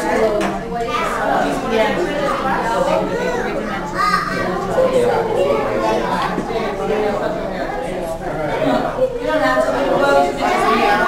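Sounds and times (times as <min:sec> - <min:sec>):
chatter of adults and children: 0:00.0 - 0:11.0.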